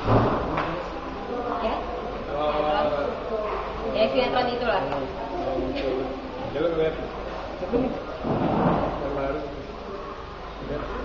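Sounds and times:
faint low voices: 0.0s - 11.0s.

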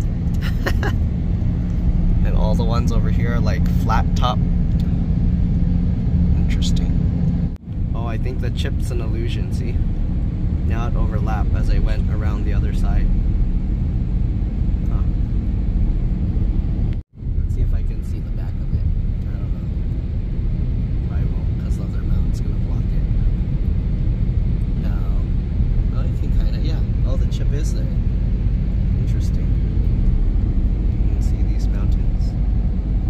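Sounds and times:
road and tyre rumble in cabin: 0.0s - 33.0s.

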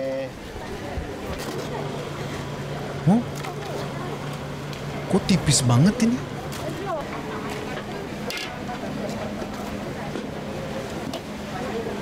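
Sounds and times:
busy outdoor market hum: 0.0s - 12.0s.

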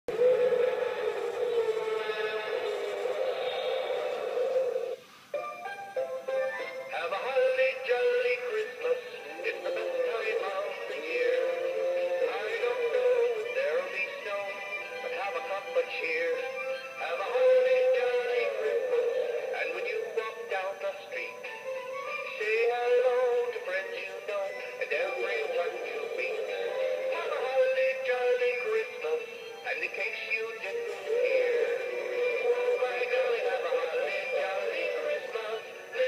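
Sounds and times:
recorded sung tune with music: 0.1s - 36.0s.

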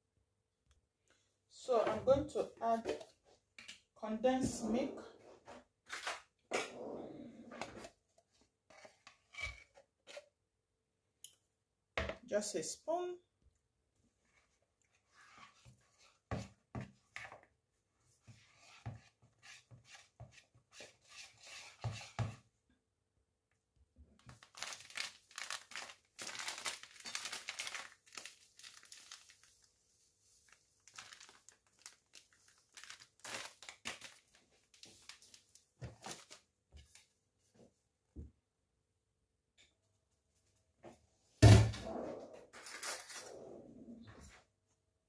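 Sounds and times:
whisk scraping in a bowl: 18.4s - 22.4s
plastic packet crinkling: 24.2s - 29.7s, 30.4s - 36.4s.

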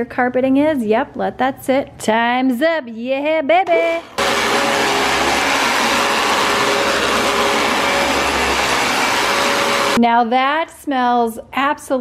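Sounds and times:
vacuum cleaner running over carpet: 4.2s - 10.0s.

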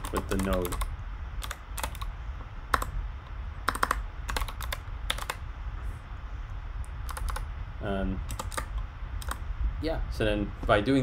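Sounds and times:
keyboard keystrokes clicking: 0.0s - 2.1s, 3.6s - 5.4s, 7.0s - 7.4s, 8.3s - 9.4s
steady low hum: 0.0s - 11.0s.

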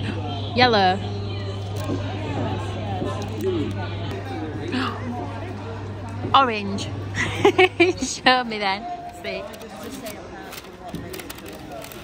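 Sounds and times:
murmur of voices: 0.0s - 12.0s
paper bag crinkling: 9.7s - 12.0s.

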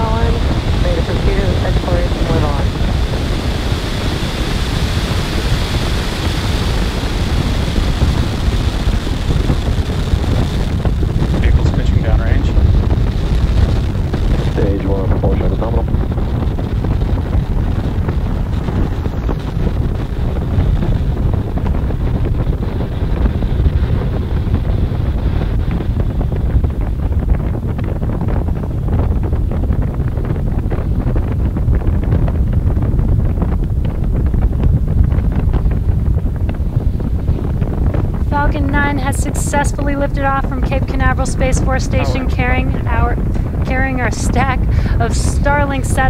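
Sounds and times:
distant rocket engine rumble: 0.0s - 46.0s
rocket engine crackling: 0.0s - 46.0s.

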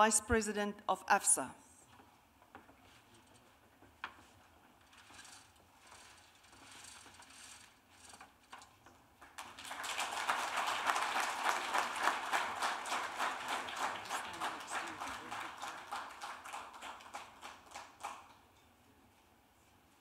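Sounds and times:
audience applause: 9.4s - 18.3s.

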